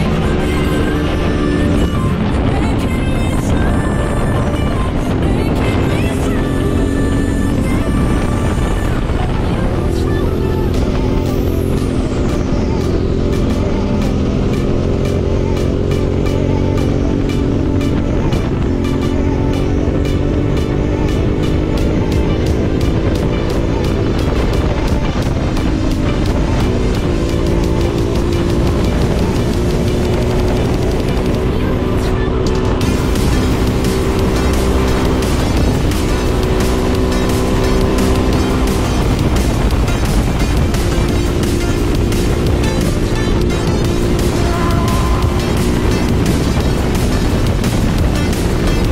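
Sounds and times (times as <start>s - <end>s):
electronic music with beat: 0.0s - 48.9s
motorcycle engine revving: 0.0s - 48.9s.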